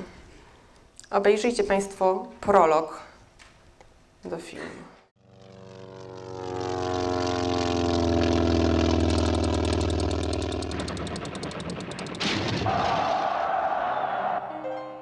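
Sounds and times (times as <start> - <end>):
propeller aircraft flying past: 5.2 - 12.3
fast even rattle: 8.3 - 12.3.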